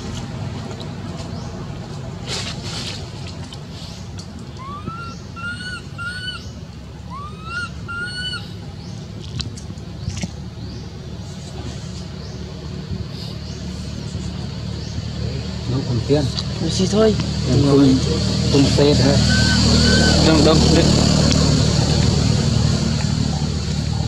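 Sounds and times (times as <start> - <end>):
steady low rumble: 0.0 - 24.0
short high clear calls: 19.2 - 20.5.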